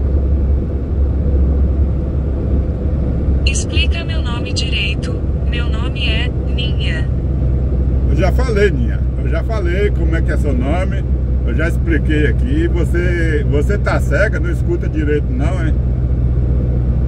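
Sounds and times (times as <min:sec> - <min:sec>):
truck engine and road drone: 0:00.0 - 0:17.0
high-pitched voice speaking: 0:03.5 - 0:07.1.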